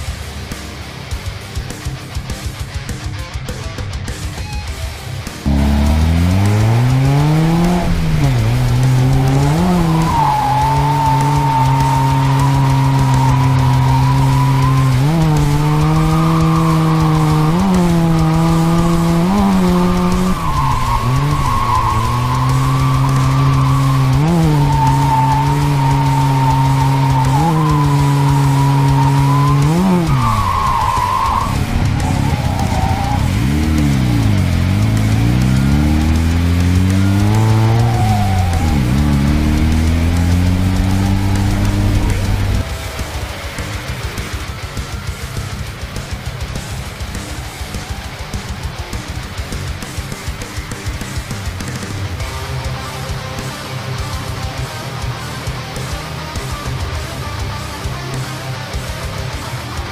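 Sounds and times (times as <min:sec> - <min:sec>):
rotary engine at high revs: 0:05.4 - 0:59.9
tire squeal: 0:05.5 - 0:49.0.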